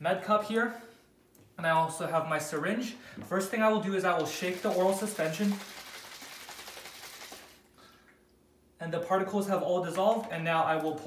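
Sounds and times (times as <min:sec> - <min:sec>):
liquid sloshing in shaken bottle: 0:04.2 - 0:07.7.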